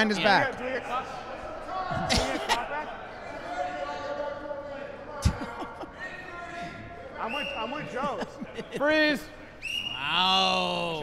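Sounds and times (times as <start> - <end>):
players calling out in echoing hall: 0.0 - 11.0.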